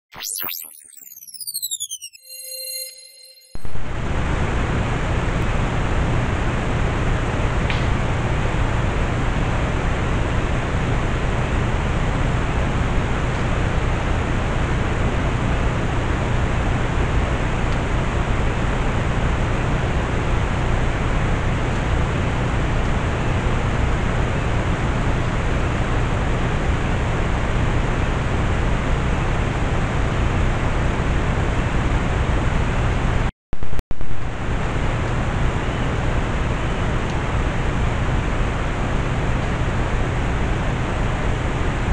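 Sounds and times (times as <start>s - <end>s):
low hum: 0.1s - 11.6s.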